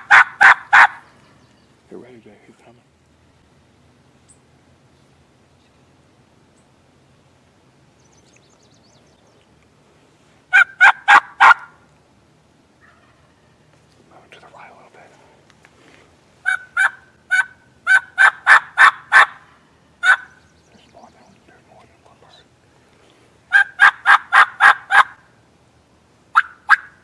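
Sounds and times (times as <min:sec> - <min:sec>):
turkey yelping: 0:00.0 - 0:01.1, 0:10.5 - 0:11.8, 0:12.8 - 0:13.7, 0:16.4 - 0:20.4, 0:23.5 - 0:25.3, 0:26.3 - 0:27.0.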